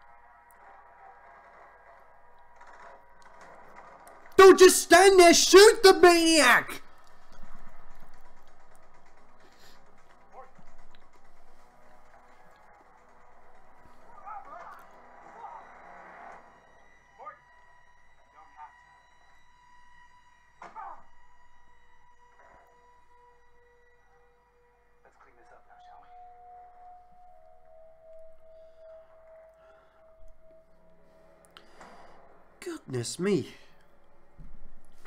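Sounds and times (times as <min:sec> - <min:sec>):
snatches of dialogue: 0:04.4 - 0:06.8.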